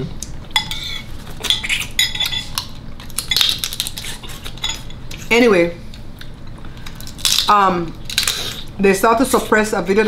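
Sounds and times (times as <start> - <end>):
metal spoons clinking on ceramic bowls: 0.6 - 2.6, 4.6 - 5.0.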